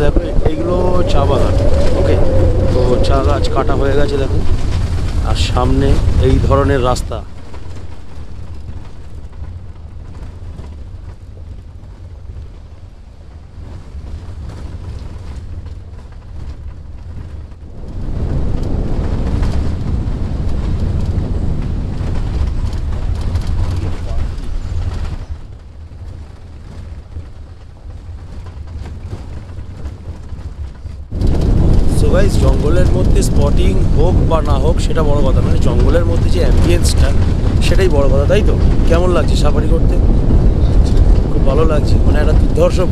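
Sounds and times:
engine and tyre rumble: 0.0 - 42.9
wind buffeting microphone: 0.0 - 42.9.

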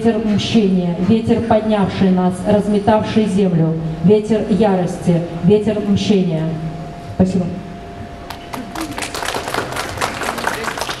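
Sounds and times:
audience applauding: 8.3 - 11.0.

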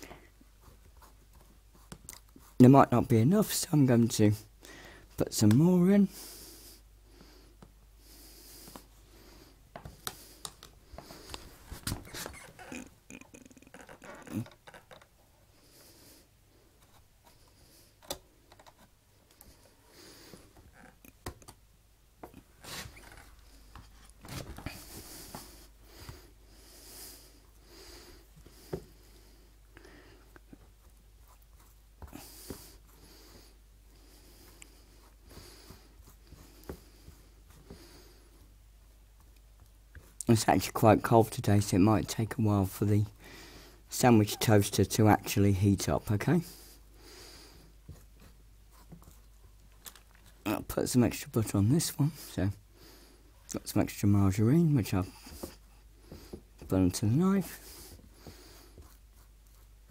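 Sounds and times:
knife spreading margarine on bread: 57.5 - 59.9.

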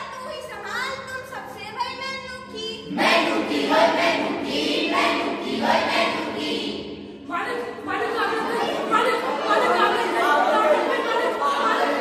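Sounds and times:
young voices singing in unison: 2.8 - 7.1, 8.4 - 12.0.

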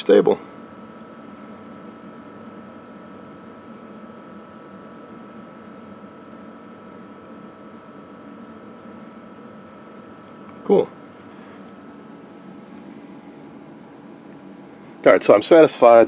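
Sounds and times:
background hiss and hum: 0.0 - 16.0
faint high whine: 0.0 - 16.0.

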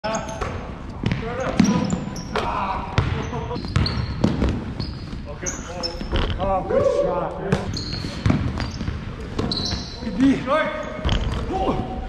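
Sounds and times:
sneakers squeaking: 0.0 - 12.0
basketball bouncing on wooden floor: 3.0 - 4.7.

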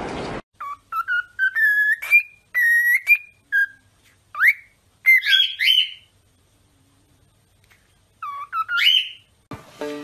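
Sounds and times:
cockatiel whistling: 0.6 - 6.1, 8.2 - 9.3.

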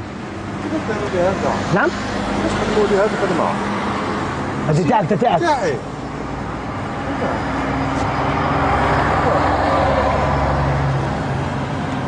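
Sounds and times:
vehicle engine passing: 0.7 - 12.0.

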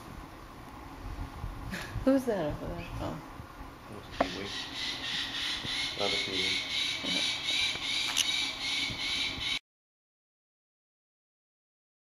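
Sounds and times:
parrot squawk: 4.1 - 9.6.

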